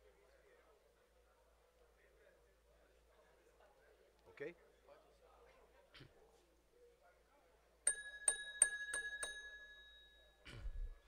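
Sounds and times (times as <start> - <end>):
small bell ringing: 7.9 - 10.4.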